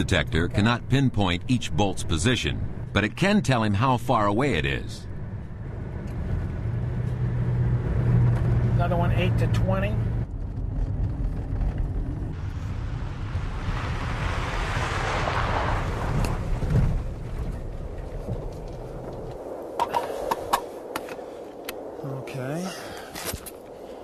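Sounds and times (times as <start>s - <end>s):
truck engine rumble: 0.0s - 19.8s
tyre and road noise: 0.0s - 24.0s.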